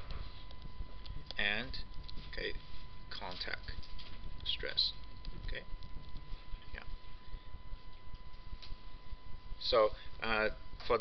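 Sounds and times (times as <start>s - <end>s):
faint high whine: 0.0s - 11.0s
low room rumble: 0.0s - 11.0s.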